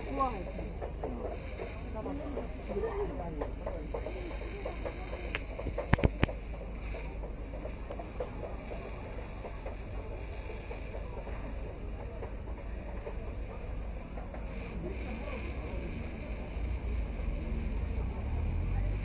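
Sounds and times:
murmur of voices: 0.0s - 19.0s.

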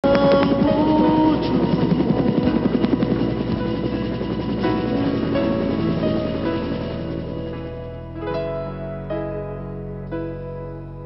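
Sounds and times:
helicopter rotor blades chopping: 0.0s - 8.1s
background music: 0.0s - 11.0s.

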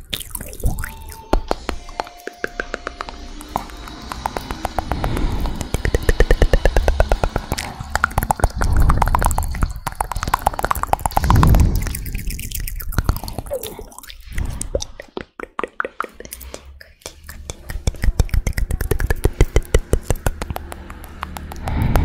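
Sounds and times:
wet mouth clicks and pops: 0.0s - 22.0s
breathy thumps: 1.4s - 12.0s, 18.9s - 22.0s.

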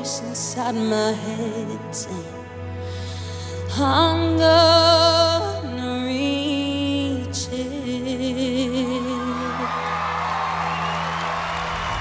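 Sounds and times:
high held whoop: 9.0s - 12.0s
audience cheering: 9.1s - 12.0s.

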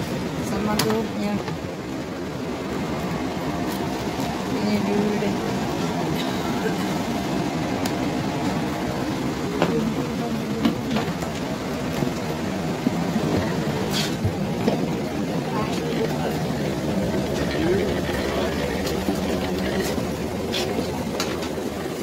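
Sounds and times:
airliner cabin hum: 0.0s - 22.0s.

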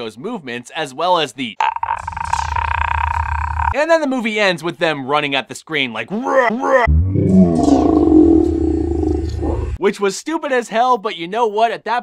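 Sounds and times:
man screaming roar: 6.1s - 9.8s.

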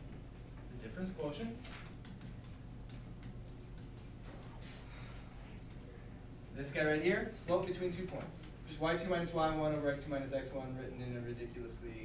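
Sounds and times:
low room hum: 0.0s - 12.0s
stylus clicks: 1.7s - 5.9s.

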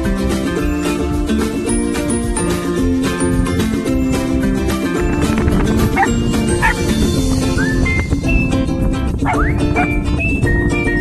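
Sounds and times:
background music: 0.0s - 11.0s
small dog yipping: 6.0s - 6.8s, 9.2s - 10.0s.

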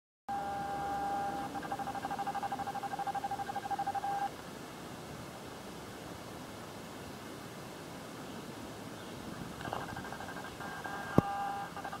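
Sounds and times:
faint hiss: 0.4s - 12.0s.

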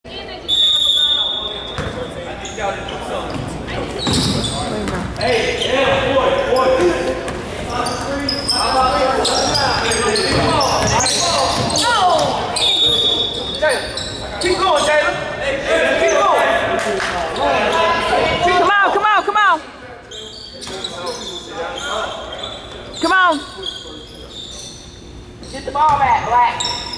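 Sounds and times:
sneakers squeaking: 0.4s - 15.4s, 20.0s - 26.9s.

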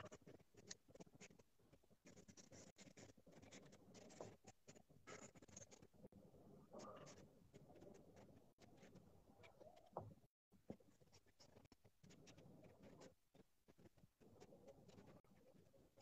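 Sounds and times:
charcoal scratching on paper: 0.0s - 6.0s.

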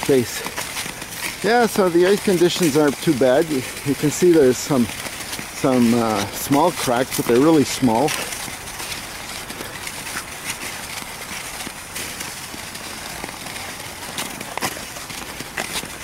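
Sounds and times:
skate blades gliding on ice: 0.0s - 16.0s.

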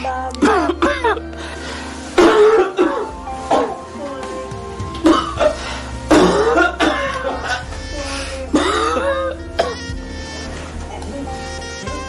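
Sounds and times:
background music: 0.0s - 12.0s
man coughing: 2.2s - 3.7s, 5.1s - 7.7s, 8.5s - 9.8s.

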